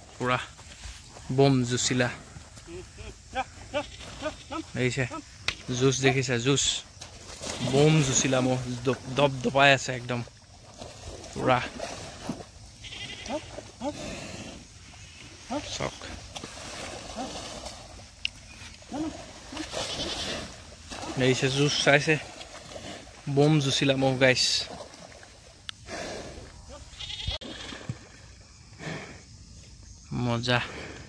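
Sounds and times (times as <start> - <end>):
water splashing and sloshing: 0.0 - 28.8.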